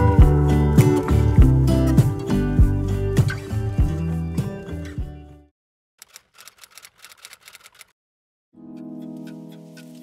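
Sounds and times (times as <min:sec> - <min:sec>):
keystroke clicks: 0:06.0 - 0:07.9.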